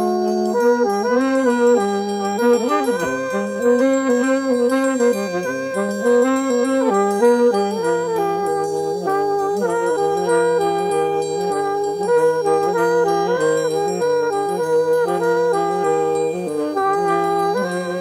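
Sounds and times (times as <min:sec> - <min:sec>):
jazz horns in close harmony: 0:00.0 - 0:18.0.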